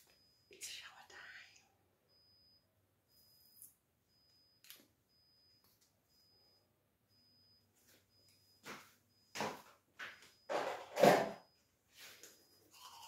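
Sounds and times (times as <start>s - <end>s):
faint whispered breathy sounds: 0.4s - 2.2s.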